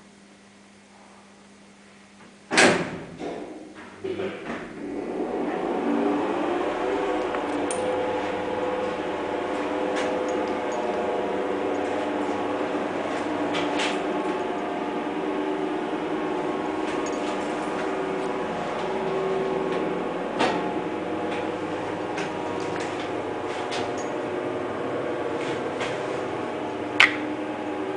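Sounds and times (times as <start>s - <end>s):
elevator drive humming: 0.0s - 27.9s.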